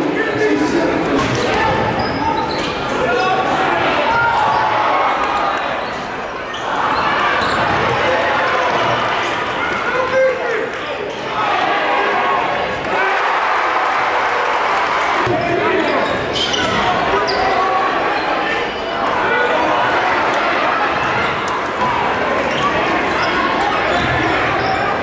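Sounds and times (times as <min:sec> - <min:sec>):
crowd and players voices: 0:00.0 - 0:25.0.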